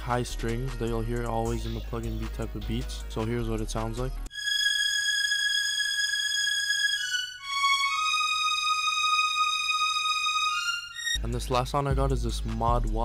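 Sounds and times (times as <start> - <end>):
synth string melody: 4.3 - 11.4.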